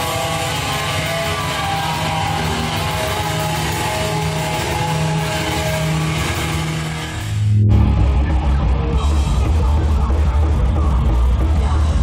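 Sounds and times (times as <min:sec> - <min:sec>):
electric guitar sustained notes: 0:00.0 - 0:10.6
live punk band playing: 0:00.0 - 0:12.0
low bass swell: 0:03.9 - 0:12.0.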